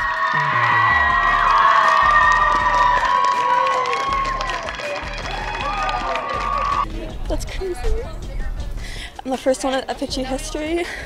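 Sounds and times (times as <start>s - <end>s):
crowd cheering and screaming: 0.0s - 6.8s
background music: 0.0s - 11.0s.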